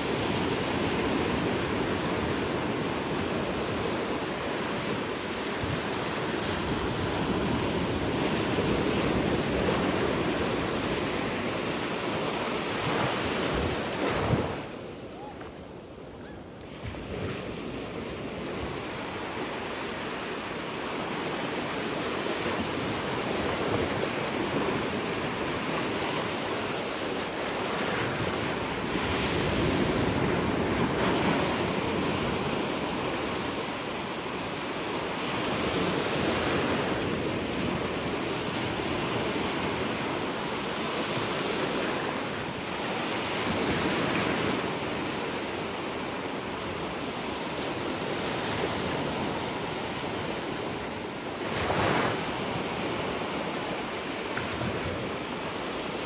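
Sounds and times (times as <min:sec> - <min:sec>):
wind on microphone: 0:00.0 - 0:45.8
shallow sea water and waves: 0:00.0 - 0:56.0.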